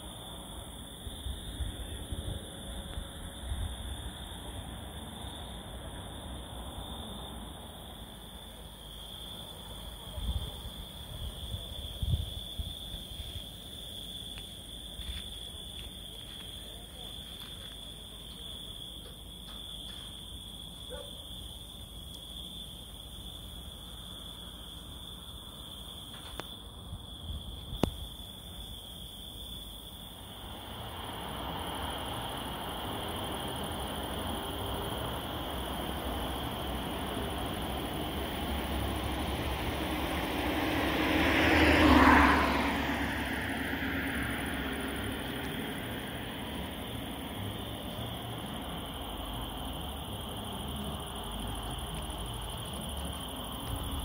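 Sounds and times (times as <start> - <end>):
crickets chirping: 0.0 - 54.0
vehicle passing close by: 30.2 - 54.0.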